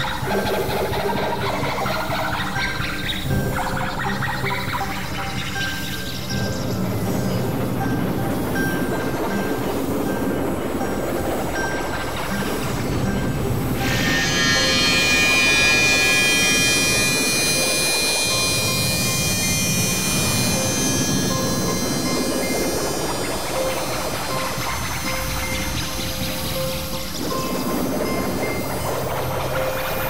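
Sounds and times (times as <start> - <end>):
synthesizer noise drone: 0.0 - 30.0.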